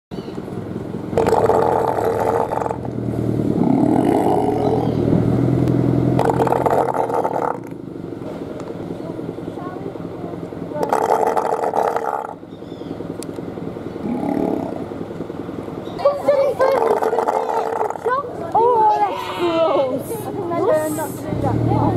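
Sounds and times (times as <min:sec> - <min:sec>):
deep drawn-out sea lion call: 0:01.2 - 0:02.9, 0:03.6 - 0:05.1, 0:06.2 - 0:07.7, 0:14.0 - 0:14.9
sea lion roaring: 0:01.2 - 0:05.1, 0:06.2 - 0:07.8, 0:10.8 - 0:12.4, 0:14.0 - 0:15.0, 0:16.6 - 0:18.2.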